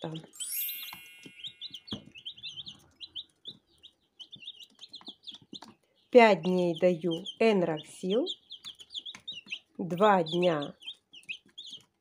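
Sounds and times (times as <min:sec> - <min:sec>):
chicks peeping: 0:00.0 - 0:12.0.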